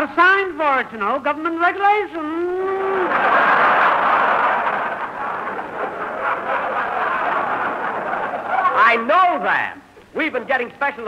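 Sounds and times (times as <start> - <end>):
studio audience laughing: 2.8 - 8.8.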